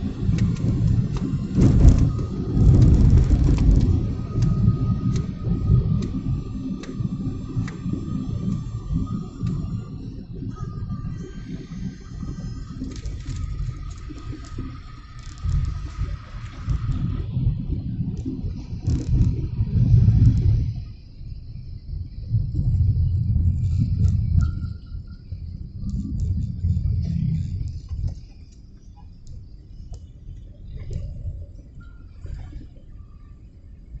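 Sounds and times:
car cabin road rumble: 0.0 - 34.0.

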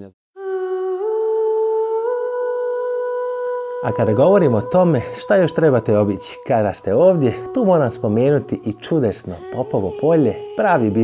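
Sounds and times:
sustained humming music note: 0.4 - 11.0.

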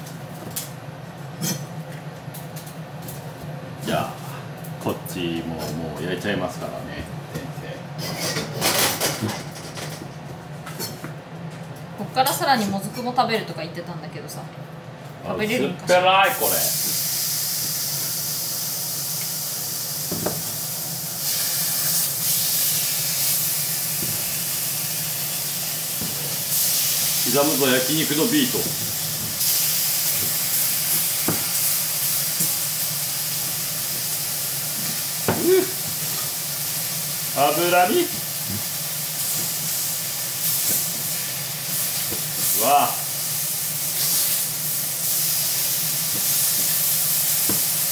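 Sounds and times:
beef sizzling in a pan: 16.2 - 47.9
knife knocking on cutting board: 20.1 - 20.4, 35.3 - 35.5.

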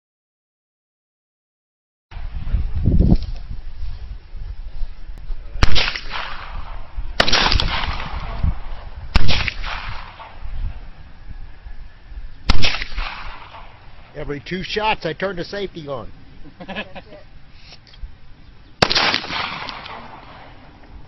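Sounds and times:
pistol shots with echo: 5.6 - 10.5, 12.5 - 14.1, 18.8 - 20.6.

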